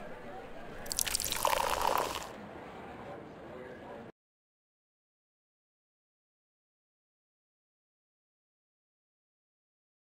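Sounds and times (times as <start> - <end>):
coffee pouring into cup: 0.9 - 2.3.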